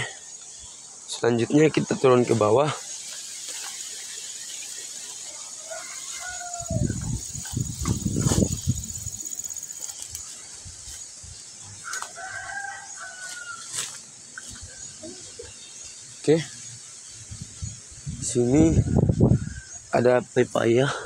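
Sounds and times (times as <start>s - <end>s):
high insect trill: 0.0s - 21.0s
rustling through undergrowth: 1.6s - 16.1s
footsteps through undergrowth: 2.2s - 15.4s
rooster crowing: 5.2s - 7.7s, 11.8s - 13.8s.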